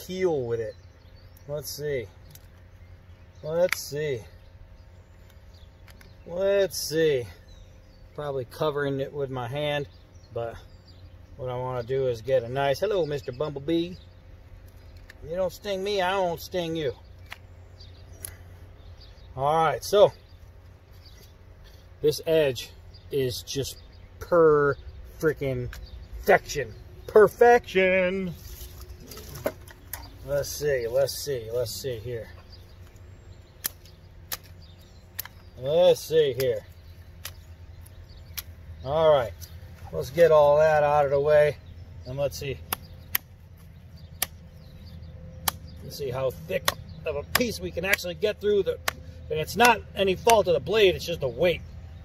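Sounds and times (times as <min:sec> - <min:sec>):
low steady hum: 0:00.0 - 0:52.0
steady low rumble: 0:00.7 - 0:52.0
knife chopping into branch: 0:33.6 - 0:34.6, 0:45.4 - 0:45.7.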